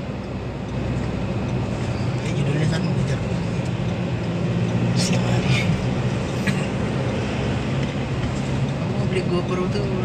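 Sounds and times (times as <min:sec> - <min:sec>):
road noise: 0:00.0 - 0:10.0
vehicle engine drone: 0:00.0 - 0:10.0.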